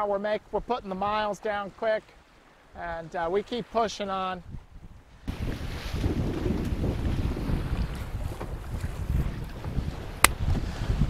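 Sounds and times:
sea water rushing along hull: 0.0s - 11.0s
wind buffeting microphone: 4.4s - 11.0s.

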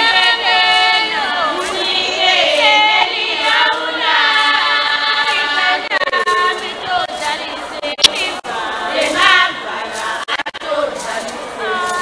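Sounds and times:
crowd singing in chorus: 0.0s - 12.0s.

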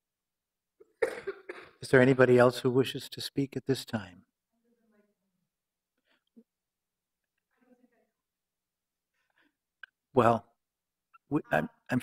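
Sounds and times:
man coughing: 0.8s - 1.8s
man speaking: 1.8s - 4.3s, 9.8s - 10.6s, 11.2s - 12.0s.

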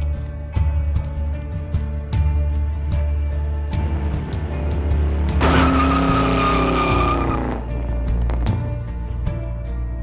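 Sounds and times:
background music: 0.0s - 10.0s
car tyres screeching: 3.9s - 8.6s.

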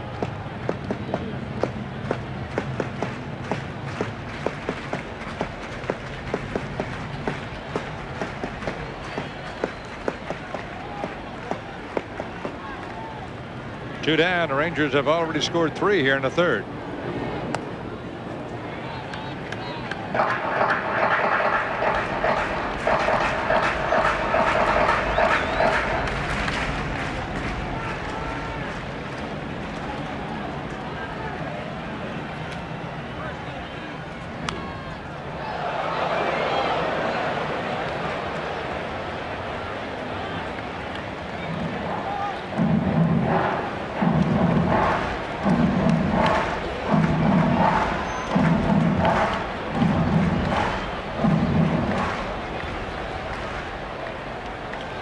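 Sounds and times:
crowd murmur: 0.0s - 55.0s
stadium music: 18.8s - 55.0s.

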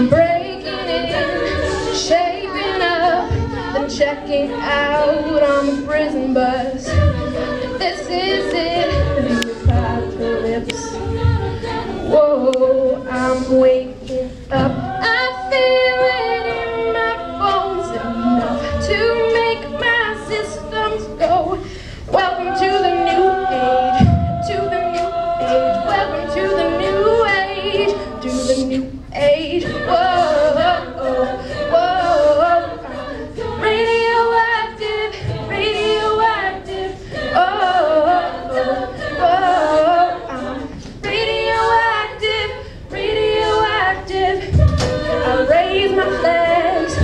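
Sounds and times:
a cappella group singing harmony: 0.0s - 47.0s.

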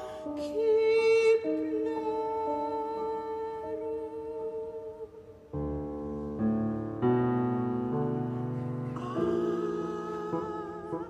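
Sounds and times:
mezzo-soprano singing: 0.0s - 11.0s
piano chords: 0.0s - 11.0s.

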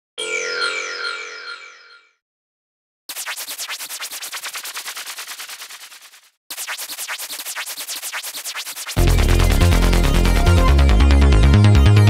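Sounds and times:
rapid stutter of noisy clicks: 3.1s - 10.6s.

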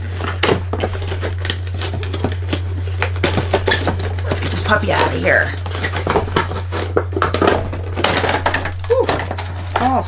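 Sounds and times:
cardboard and paper packaging crinkling: 0.0s - 10.0s
steady low hum: 0.0s - 10.0s.

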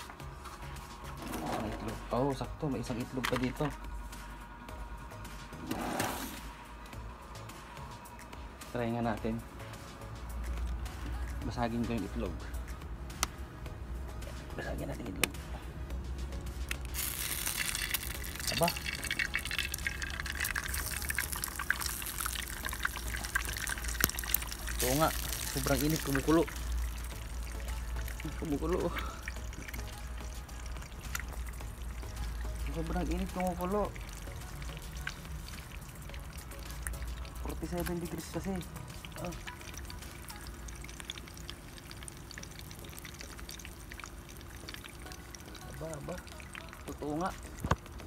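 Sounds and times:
egg sizzling in a frying pan: 16.7s - 48.0s.

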